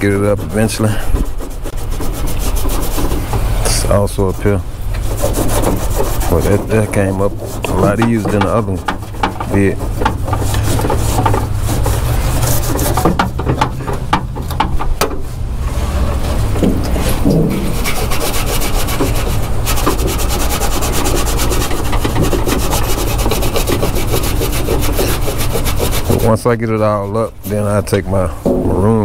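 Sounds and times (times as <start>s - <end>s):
rag rubbing on metal: 0.0s - 29.0s
steady low rumble: 0.0s - 29.0s.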